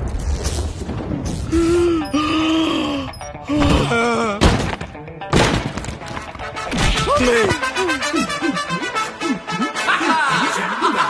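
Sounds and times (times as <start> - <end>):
film music: 0.9 - 11.0
man crying out: 7.0 - 11.0.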